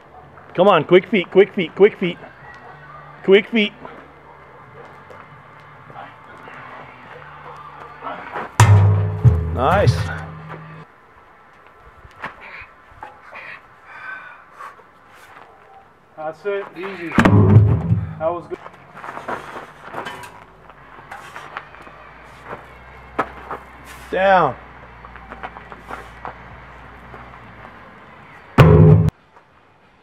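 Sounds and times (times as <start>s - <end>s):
sharp knock: 8.6s - 10.6s, 17.2s - 18.3s, 28.6s - 29.1s
heavy thud: 8.6s - 10.8s, 17.2s - 18.4s, 28.6s - 29.1s.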